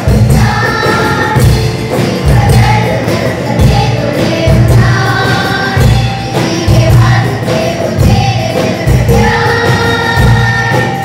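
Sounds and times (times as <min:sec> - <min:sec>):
children's choir singing: 0:00.0 - 0:11.0
congas and hand drums: 0:00.0 - 0:11.0
drum kit steady beat: 0:00.0 - 0:11.0.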